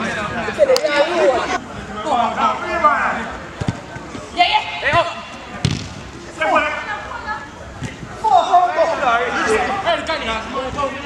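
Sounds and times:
football kick thud: 5.6 - 6.0.

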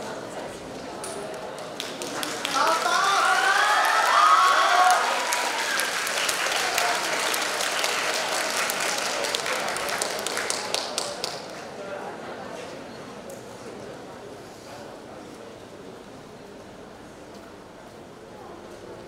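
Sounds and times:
audience applauding: 1.6 - 11.6
cheering voices: 2.2 - 10.4.

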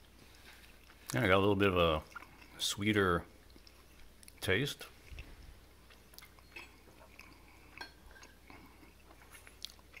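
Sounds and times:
faint chewing: 0.0 - 10.0
low steady hum: 0.0 - 10.0.

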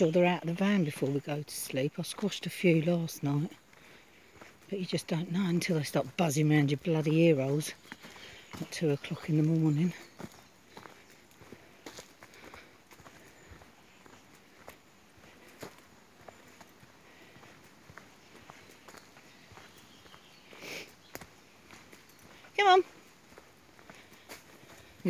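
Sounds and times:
footsteps on dirt path: 0.0 - 25.0.

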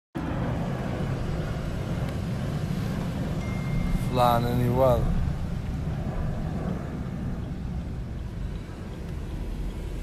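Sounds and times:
road and engine rumble in car: 0.2 - 10.0.

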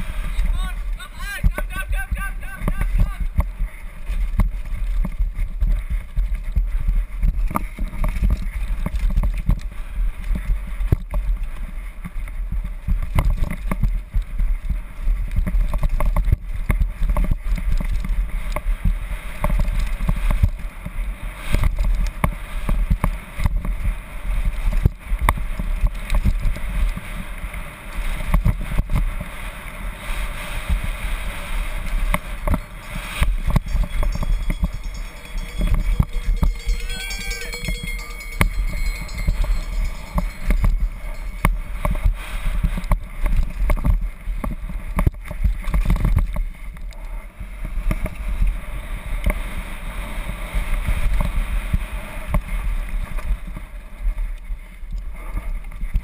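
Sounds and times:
wind buffeting camera: 0.0 - 56.0
mountain bike rattling: 3.4 - 29.8, 31.3 - 47.4.

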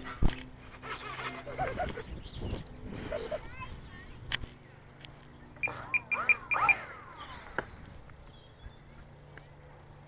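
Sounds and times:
short high transmitter beeps: 5.6 - 6.9.

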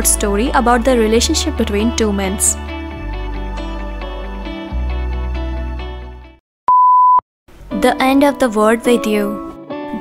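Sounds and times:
background music: 0.0 - 6.4, 7.5 - 10.0
electronic beep: 6.7 - 7.2.

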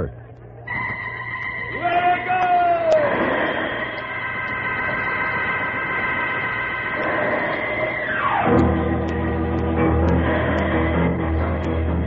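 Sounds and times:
organ chords: 0.0 - 12.0
static hiss: 0.0 - 12.0.

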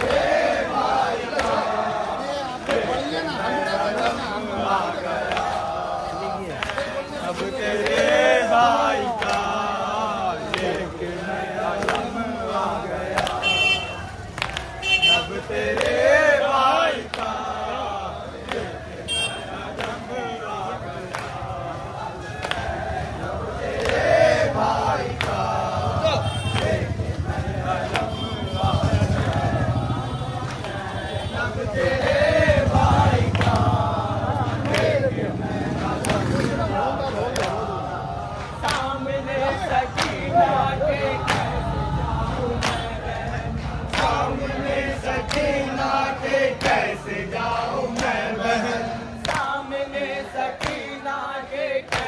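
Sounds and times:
crowd of men chanting: 0.0 - 52.0
hands slapping chests: 9.2 - 9.6, 13.1 - 13.4, 14.2 - 14.8, 35.9 - 36.5, 37.2 - 39.0, 43.8 - 44.2, 49.2 - 49.6, 50.5 - 50.9.

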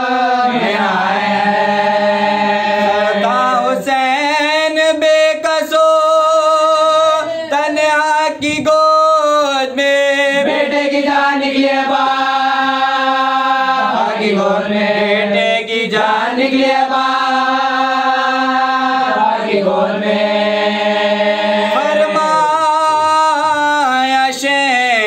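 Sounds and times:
man singing unaccompanied elegy: 2.8 - 11.4, 21.7 - 25.0.

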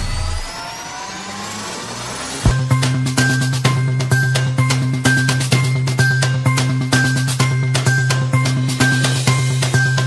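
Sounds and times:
whooshing riser with rising tones: 0.0 - 2.8.

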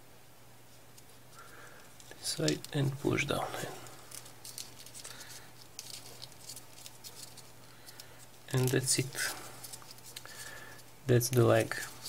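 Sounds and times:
crinkly paper ticks: 1.4 - 3.2, 4.1 - 12.0
folded paper rustling and scratching: 2.2 - 12.0.

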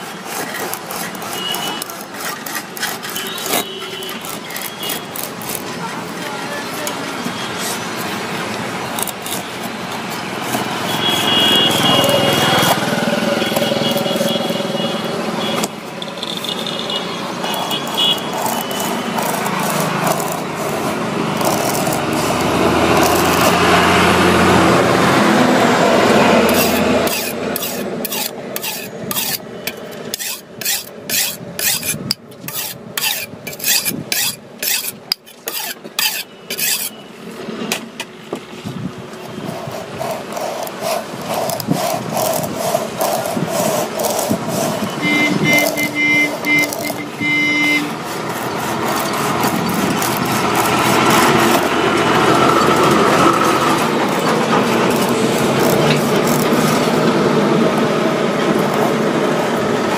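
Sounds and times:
hacksaw cutting rubber: 0.0 - 59.9
passing motor vehicle rumble: 17.1 - 29.2, 47.9 - 59.9.

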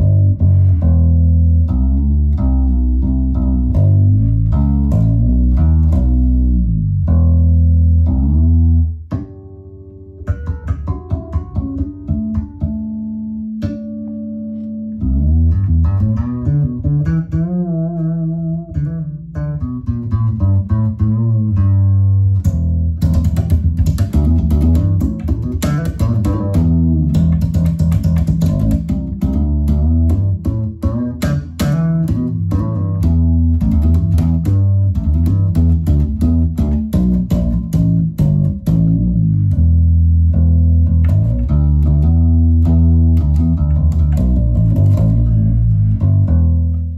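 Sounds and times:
fretless bass melody: 0.0 - 46.9.

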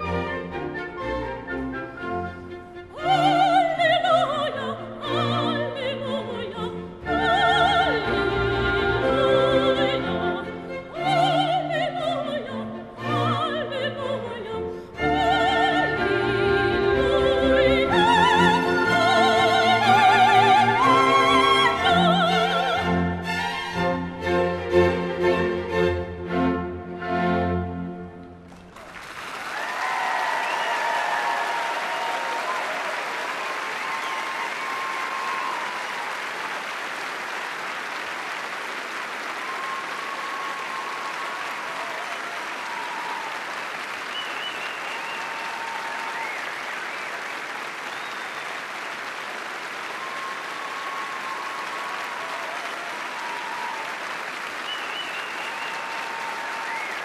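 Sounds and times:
audience applauding: 17.7 - 23.8, 28.4 - 57.0
scattered cheers: 28.8 - 57.0.

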